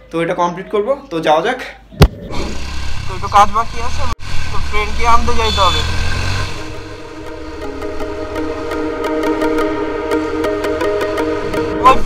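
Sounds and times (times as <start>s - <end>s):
background music with held tones: 6.2s - 12.0s.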